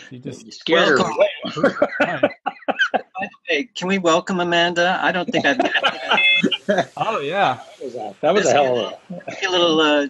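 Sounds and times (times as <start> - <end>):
people laughing: 0.7 - 3.6, 5.1 - 10.0.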